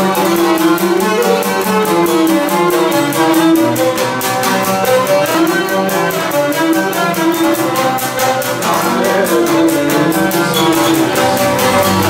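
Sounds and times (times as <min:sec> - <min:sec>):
bowed lyra dance melody: 0:00.0 - 0:12.0
lute strummed rhythmically: 0:00.0 - 0:12.0.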